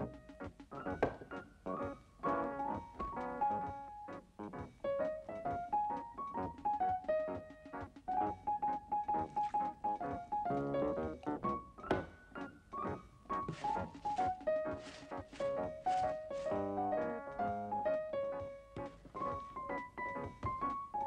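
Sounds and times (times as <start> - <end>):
bouncy piano tune: 0.0 - 21.0
brush scrubbing laundry: 13.4 - 17.1.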